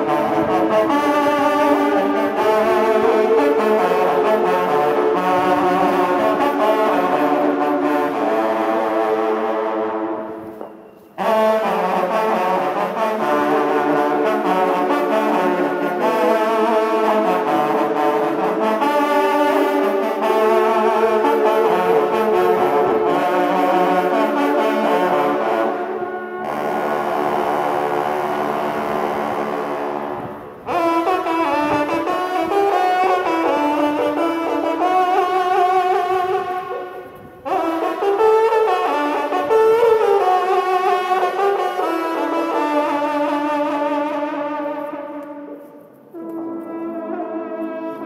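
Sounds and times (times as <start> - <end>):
hunting horns playing chords: 0.0 - 48.0.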